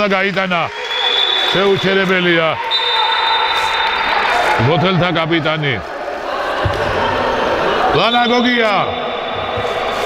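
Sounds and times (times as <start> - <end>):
echoing hall noise: 0.0 - 10.0.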